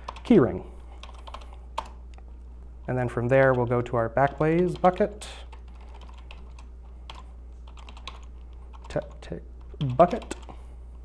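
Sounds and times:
computer keyboard typing: 0.0 - 0.3, 1.0 - 2.0, 3.4 - 10.5
low electrical hum: 0.0 - 11.0.

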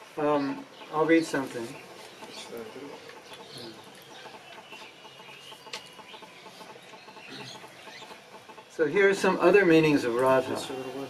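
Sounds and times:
faint distant sounds: 0.0 - 11.0.

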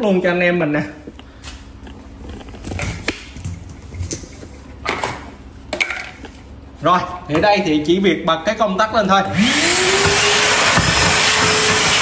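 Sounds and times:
low background hum: 0.0 - 10.0
hard objects knocking and clicking: 9.8 - 12.0.

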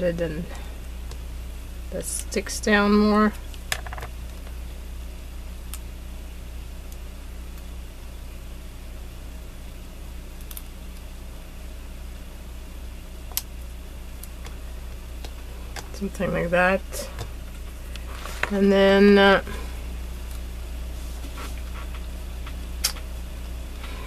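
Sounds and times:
low room hum: 0.0 - 24.0.

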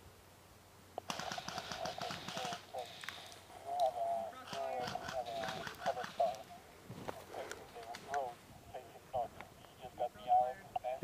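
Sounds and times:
quick clicks: 1.0 - 3.9, 4.5 - 6.5
rustling: 1.0 - 10.1
distant voices calling: 1.0 - 11.0.

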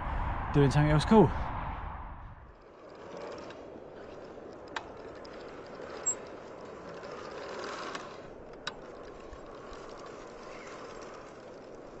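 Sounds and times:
wind noise: 0.0 - 6.0
bike tyres rolling on grass: 2.5 - 12.0.

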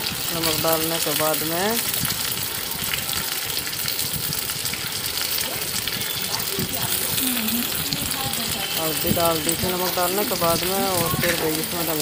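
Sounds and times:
chillies sizzling in oil: 0.0 - 12.0.

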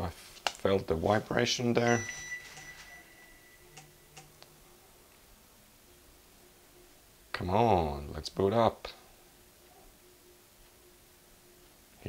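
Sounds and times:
faint high tone: 1.8 - 5.1.

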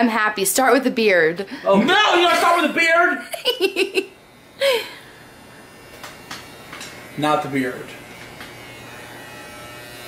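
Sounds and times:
electric hair clippers buzzing: 1.9 - 10.0.

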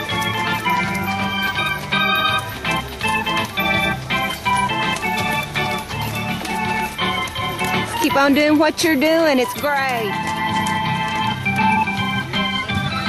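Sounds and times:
organ music: 0.0 - 13.0.

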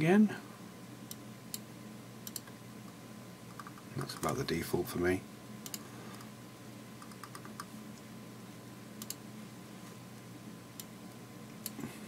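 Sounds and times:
low steady hum: 0.0 - 12.0
computer mouse clicking: 2.2 - 2.6, 3.5 - 4.4, 5.6 - 6.2, 7.0 - 7.7, 9.0 - 9.2.

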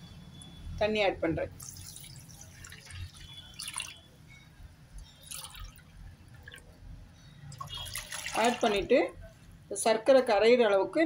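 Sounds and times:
water trickling onto sugar: 1.5 - 4.2, 5.0 - 9.0.

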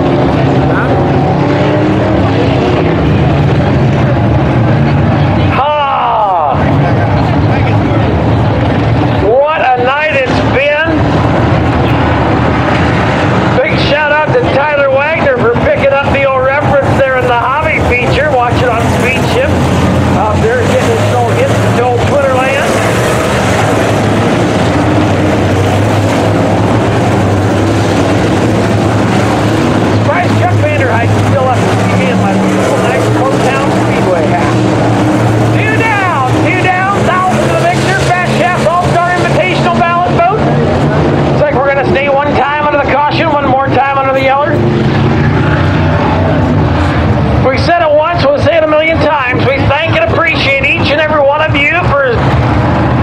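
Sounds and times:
race car engines revving: 0.0 - 53.0.

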